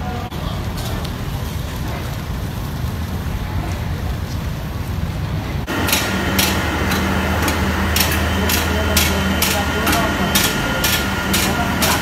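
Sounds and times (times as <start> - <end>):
steady low hum: 0.0 - 12.0
stretcher wheels clicking: 5.7 - 12.0.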